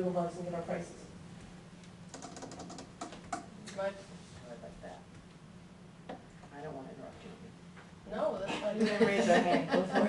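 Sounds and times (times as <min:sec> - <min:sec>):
laptop keyboard typing: 0:02.1 - 0:03.5.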